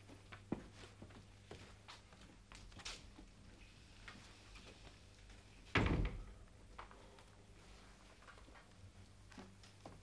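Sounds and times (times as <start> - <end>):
wooden door thud: 5.7 - 6.3.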